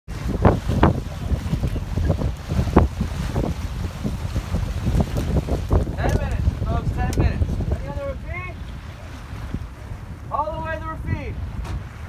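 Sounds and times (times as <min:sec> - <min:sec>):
sea wash: 0:00.1 - 0:12.0
wind buffeting microphone: 0:00.1 - 0:12.0.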